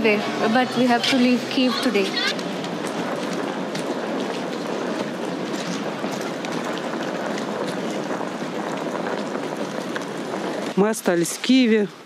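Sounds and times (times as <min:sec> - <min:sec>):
street noise hiss: 0:00.0 - 0:12.0.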